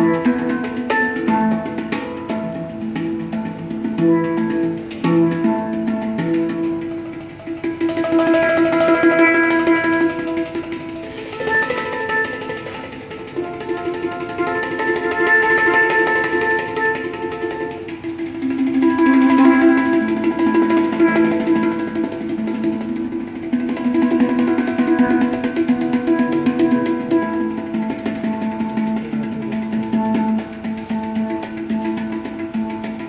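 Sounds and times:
handpan melody: 0.0s - 33.0s.

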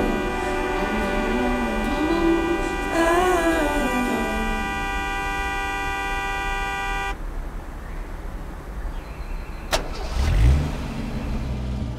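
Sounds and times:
song's held chord: 0.0s - 5.8s
car engine starting: 0.0s - 8.7s, 9.5s - 11.9s.

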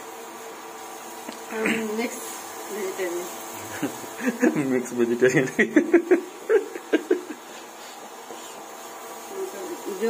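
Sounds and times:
induction cooktop electrical buzz: 0.0s - 10.0s.

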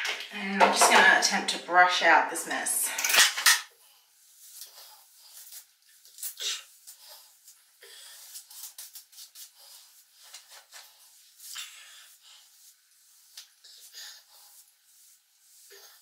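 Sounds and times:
hairbrush swishing through hair: 8.2s - 16.0s.

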